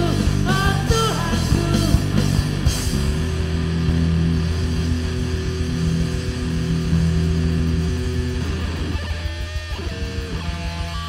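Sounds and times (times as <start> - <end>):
bass guitar low notes: 0.0 - 11.0
electric guitar: 0.0 - 11.0
rock band playing live: 0.0 - 11.0.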